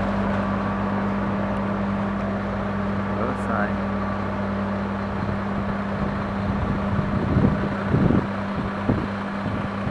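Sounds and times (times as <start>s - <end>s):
truck engine humming: 0.0s - 9.9s
wind buffeting microphone: 5.1s - 9.9s.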